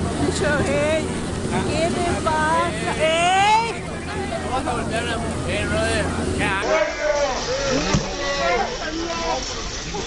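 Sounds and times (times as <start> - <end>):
men's agitated voices: 4.2 - 9.4.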